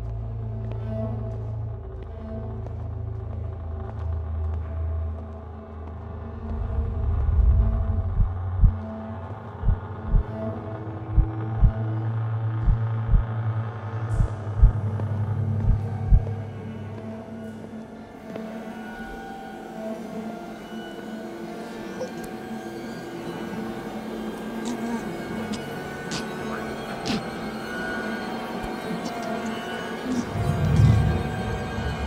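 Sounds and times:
low rumbling drone: 1.4s - 17.8s, 30.0s - 32.0s
heartbeat thumps: 7.0s - 8.8s, 9.6s - 10.4s, 11.1s - 11.9s, 12.5s - 13.4s, 14.1s - 14.8s, 15.6s - 16.3s.

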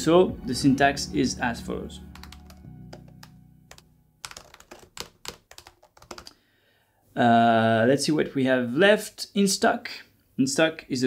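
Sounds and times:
keyboard typing: 2.1s - 6.3s.

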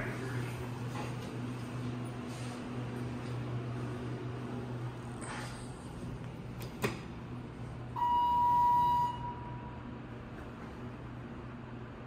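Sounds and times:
elevator arrival chime: 8.0s - 9.9s.

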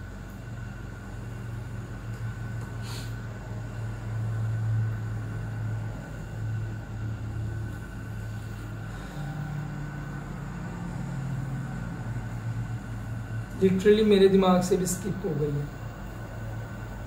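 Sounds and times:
steady low hum: 0.0s - 17.0s
faint high steady tone: 8.0s - 17.0s.

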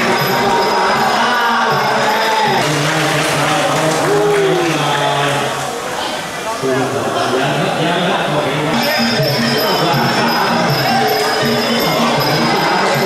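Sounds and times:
drums: 0.0s - 4.4s
crowd noise: 0.0s - 13.0s.

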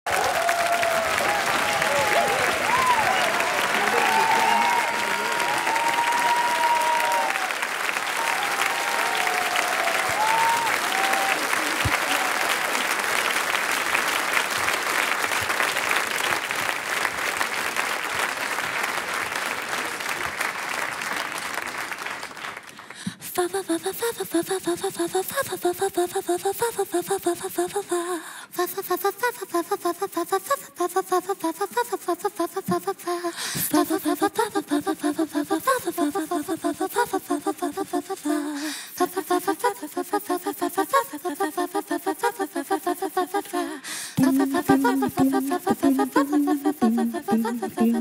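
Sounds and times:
people cheering: 0.0s - 22.0s
audience applauding: 0.0s - 23.0s.

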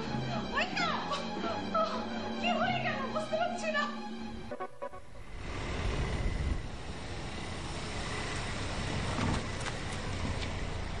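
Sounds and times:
car driving along street: 5.1s - 11.0s
road and traffic noise: 5.1s - 11.0s.

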